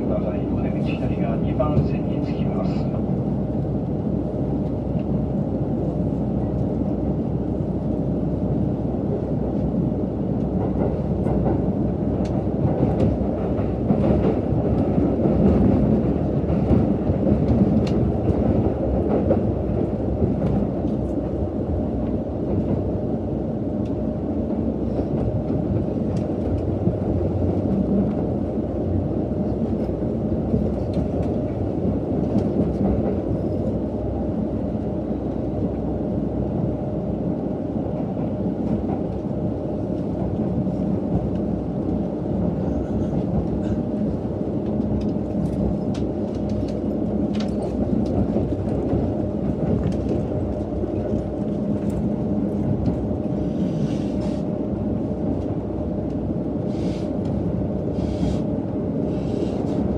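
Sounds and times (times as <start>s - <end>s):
train cabin rumble: 0.0s - 59.9s.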